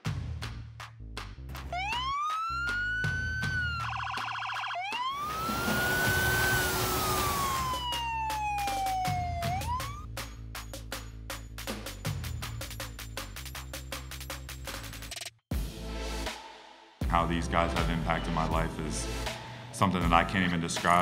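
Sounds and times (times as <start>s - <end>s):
electronic music with beat: 1.5s - 15.8s
police siren wailing: 1.7s - 10.1s.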